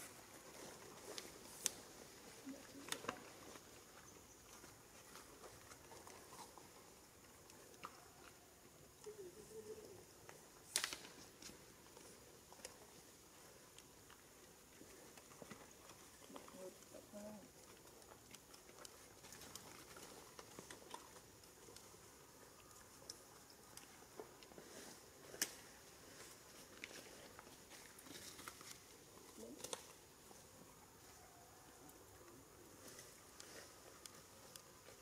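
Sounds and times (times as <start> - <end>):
faint steady hiss: 0.0 - 35.0.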